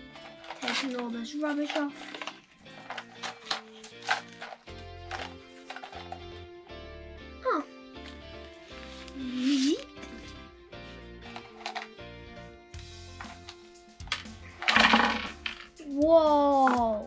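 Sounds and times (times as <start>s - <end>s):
plastic toy handling: 0.0s - 6.4s, 11.2s - 12.0s
plastic toy parts clattering: 0.0s - 6.4s, 11.3s - 11.9s, 14.1s - 15.7s
background music: 0.0s - 17.0s.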